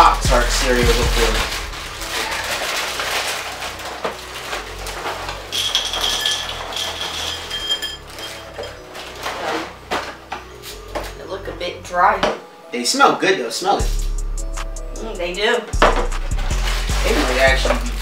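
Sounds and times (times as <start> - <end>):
plastic liner crinkling and tearing: 0.6 - 6.7, 8.1 - 11.1.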